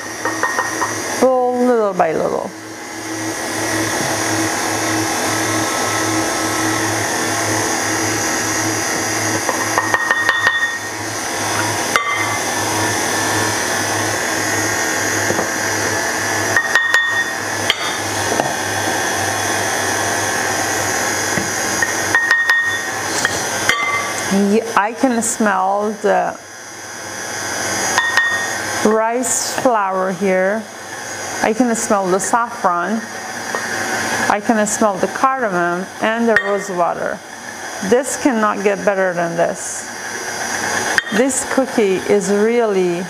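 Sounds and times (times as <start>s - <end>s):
electric stand mixer running: 0.0s - 43.0s.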